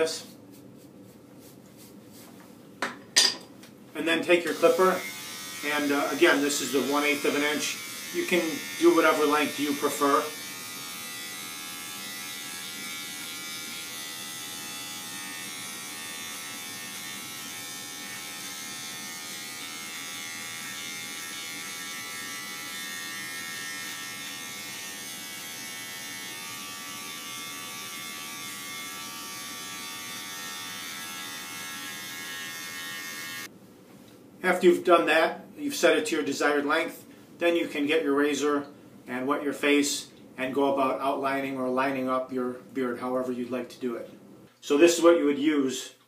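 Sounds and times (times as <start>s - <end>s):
electric beard trimmer buzzing: 4.4s - 33.5s.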